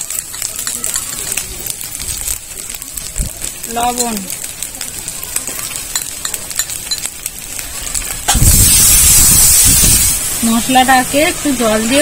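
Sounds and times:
masala frying in oil: 0.0s - 12.0s
water sizzling in hot pan: 0.0s - 12.0s.

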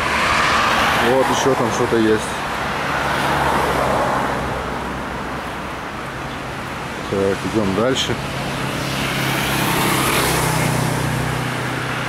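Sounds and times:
road traffic: 0.0s - 12.0s
vehicle passing: 0.0s - 12.0s.

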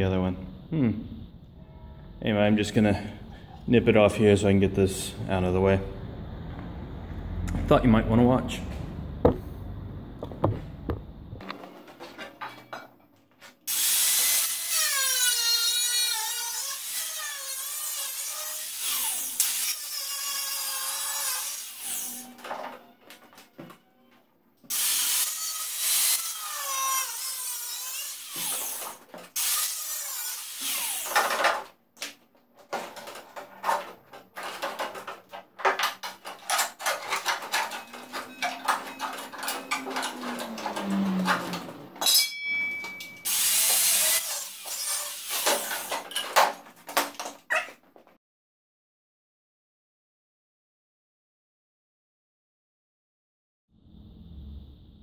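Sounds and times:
angle grinder cutting steel: 13.7s - 22.4s, 24.7s - 31.3s, 36.3s - 46.1s.

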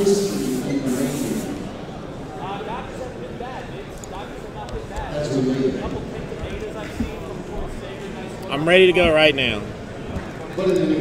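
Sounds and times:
murmur of large hall: 0.0s - 11.0s
man's voice: 8.5s - 9.7s.

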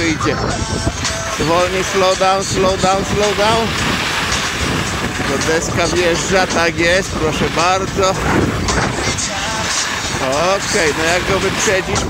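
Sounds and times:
wind buffeting microphone: 0.0s - 12.0s
snow scraping: 1.1s - 12.0s.

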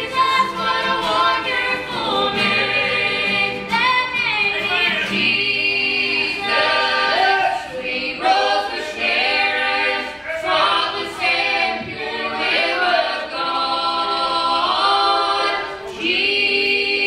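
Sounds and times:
people singing gospel in harmony: 0.0s - 17.0s.

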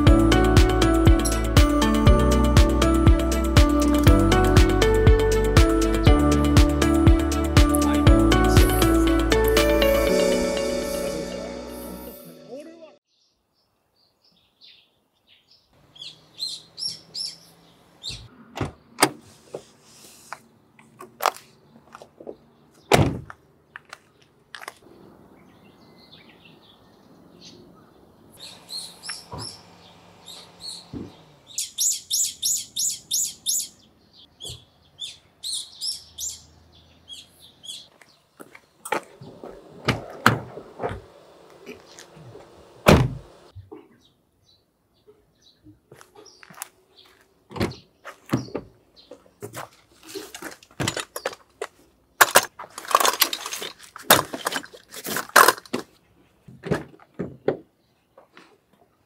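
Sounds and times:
birds chirping: 6.1s - 19.0s, 23.6s - 49.8s
sharp knocks and thumps: 30.9s - 31.2s.

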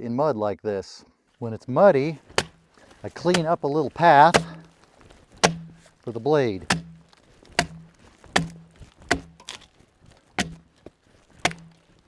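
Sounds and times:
axe striking log: 2.2s - 6.0s, 6.6s - 12.0s.

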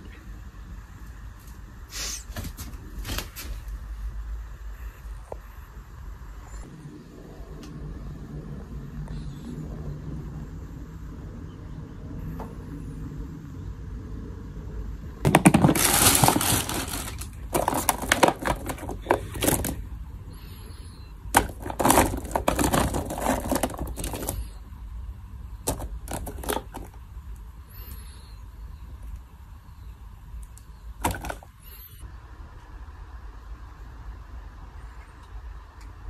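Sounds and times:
plastic figures clattering: 15.3s - 19.9s, 21.3s - 24.5s, 25.6s - 27.0s, 31.0s - 31.6s.

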